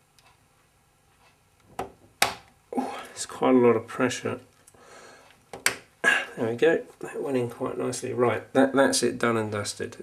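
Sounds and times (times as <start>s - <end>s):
man talking: 2.8s - 4.4s, 6.0s - 10.0s.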